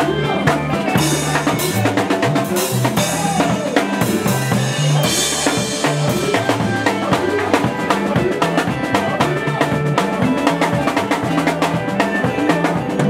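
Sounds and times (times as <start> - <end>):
drum kit with cymbals: 0.0 - 13.0
electric bass guitar: 0.0 - 13.0
electric guitar: 0.0 - 13.0.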